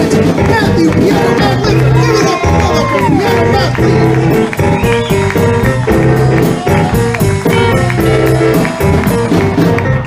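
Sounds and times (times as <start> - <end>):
electric blues band playing: 0.0 - 10.0.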